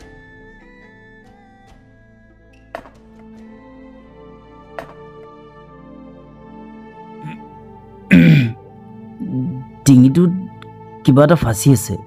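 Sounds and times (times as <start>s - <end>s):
soft background music: 0.0s - 12.0s
man coughing: 8.1s - 8.6s.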